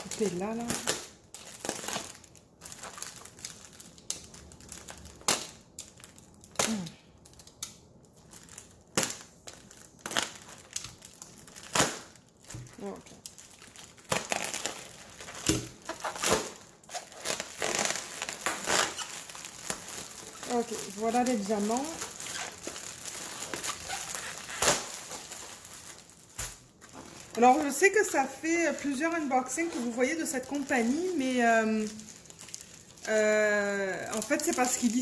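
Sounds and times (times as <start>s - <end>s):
bubble wrap crackling: 0.0s - 35.0s.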